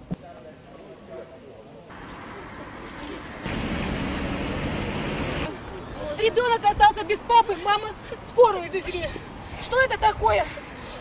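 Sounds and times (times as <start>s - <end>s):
rushing outdoor noise: 1.9s - 11.0s.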